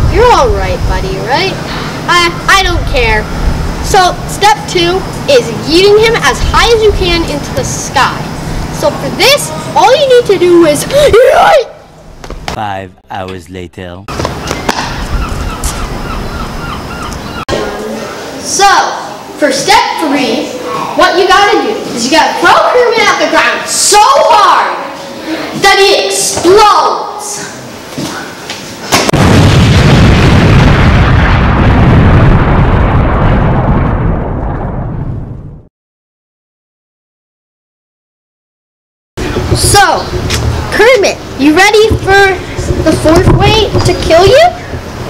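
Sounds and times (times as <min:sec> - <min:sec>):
gulls crying: 0:00.0 - 0:23.3
explosion blast and deep rumble: 0:29.1 - 0:35.7, 0:39.2 - 0:45.0
steady rushing noise: 0:39.2 - 0:45.0.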